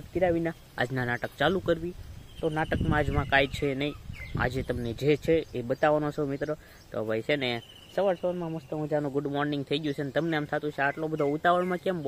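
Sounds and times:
man talking quickly: 0.0s - 12.0s.

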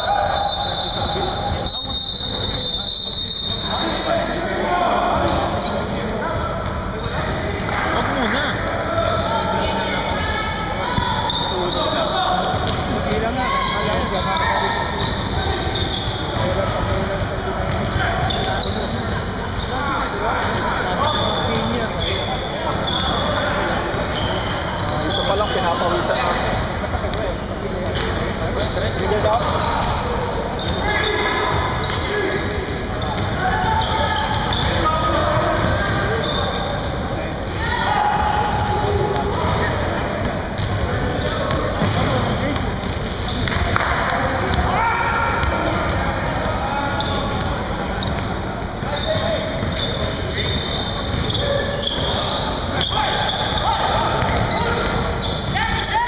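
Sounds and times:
players' voices echoing: 0.0s - 56.0s.

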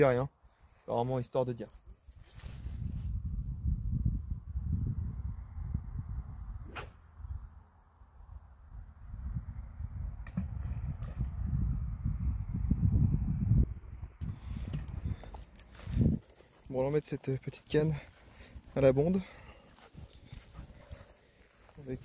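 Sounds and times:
wind buffeting microphone: 2.1s - 7.7s, 8.3s - 22.0s
fishing rod cast whoosh: 6.6s - 7.5s.

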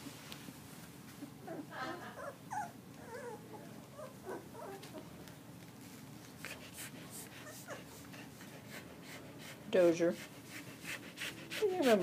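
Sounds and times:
puppies squeaking and whimpering: 2.2s - 4.9s.

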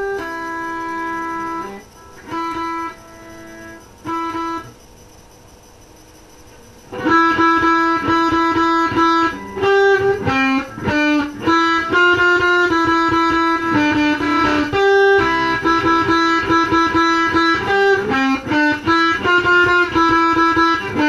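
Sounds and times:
amplifier hiss: 0.0s - 21.0s
electric guitar fast picked notes: 0.0s - 21.0s.

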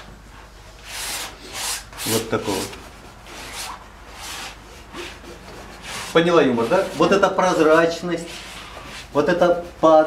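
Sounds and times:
palette knife scraping paint: 0.8s - 10.0s.

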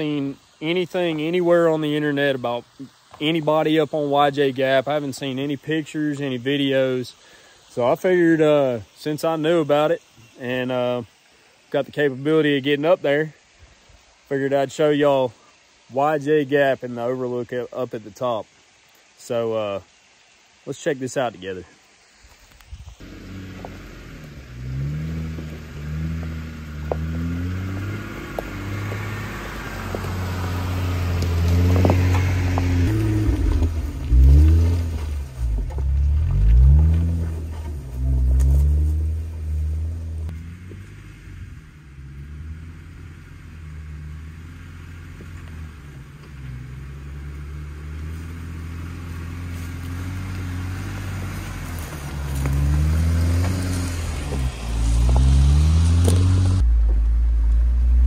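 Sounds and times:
off-road vehicle engine climbing: 22.9s - 58.0s.

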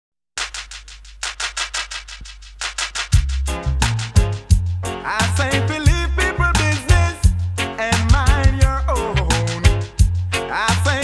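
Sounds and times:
shaker rhythmic strokes: 0.4s - 11.0s.

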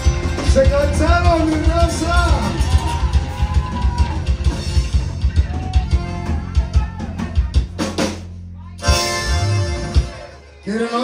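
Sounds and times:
drum kit beat: 0.0s - 10.6s
electric bass: 0.0s - 11.0s
guitar: 0.0s - 11.0s
button accordion: 8.8s - 11.0s.

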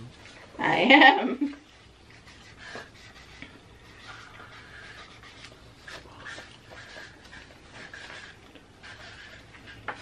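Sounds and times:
marker writing on paper: 1.5s - 10.0s.

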